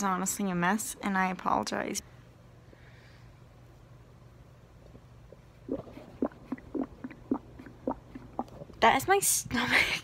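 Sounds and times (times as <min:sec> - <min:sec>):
stomach rumbling: 0:04.8 - 0:08.8.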